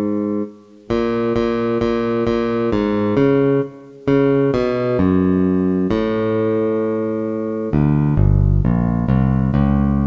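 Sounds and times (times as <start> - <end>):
bass line at half speed: 7.7 - 10.0.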